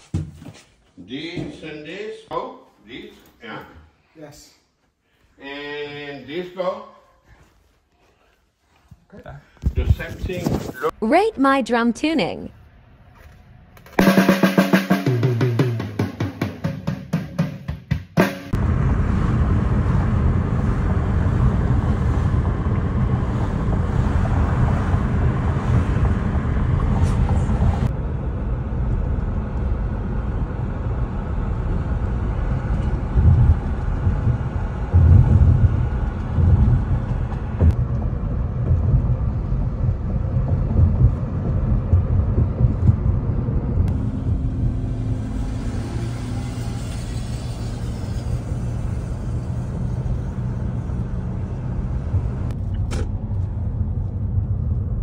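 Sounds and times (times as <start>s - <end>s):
drum fill on toms: 14.0s - 18.6s
car cabin road and engine rumble: 18.5s - 55.0s.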